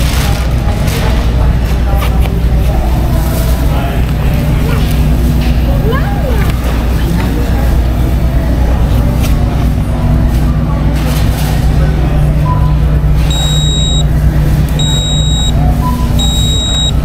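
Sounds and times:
low hum of a large store: 0.0 - 17.0
payment terminal beeping: 12.5 - 14.2, 14.8 - 17.0.

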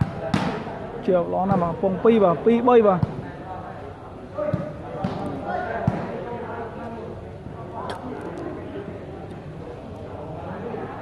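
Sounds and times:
volleyball thudding: 0.0 - 0.7, 4.4 - 6.2
spectators chattering: 0.0 - 11.0.

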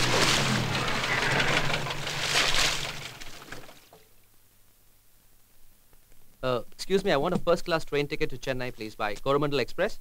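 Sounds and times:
low engine hum: 0.0 - 3.4
vehicle splashing on wet road: 0.0 - 3.4.

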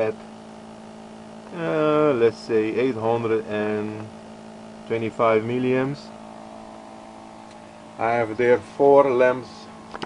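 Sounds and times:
motor-generator humming: 0.0 - 10.0.

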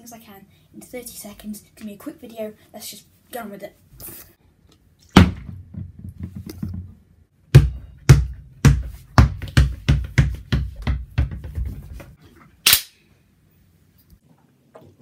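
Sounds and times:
plastic bottle hitting wooden floor: 5.1 - 7.0
feet thumping on wooden floor: 7.6 - 12.2
sharp snap: 12.6 - 13.0.

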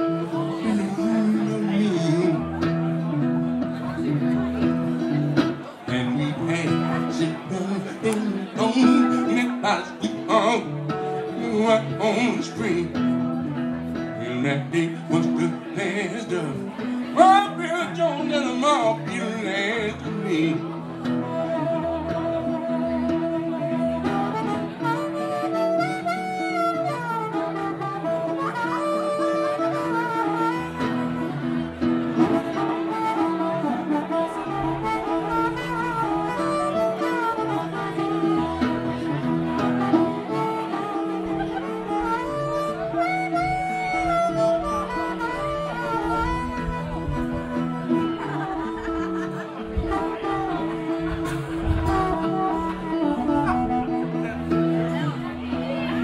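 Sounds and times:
strummed acoustic guitar: 0.0 - 56.0
harmonica playing bent notes: 20.6 - 56.0.

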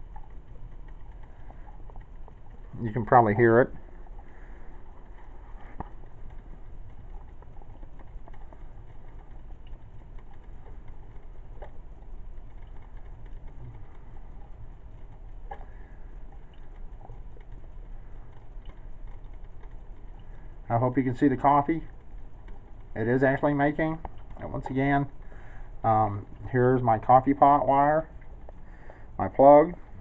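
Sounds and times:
water bubbling in coffee maker: 0.0 - 30.0.

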